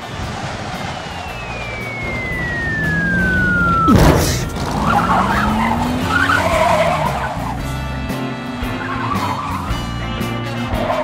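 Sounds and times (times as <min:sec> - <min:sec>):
car engine revving: 0:00.0 - 0:11.0
car tyres screeching: 0:00.0 - 0:11.0
background music: 0:01.4 - 0:11.0.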